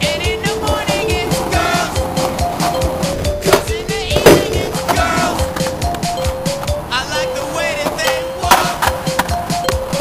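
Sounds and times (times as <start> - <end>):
music with sung vocal: 0.0 - 10.0.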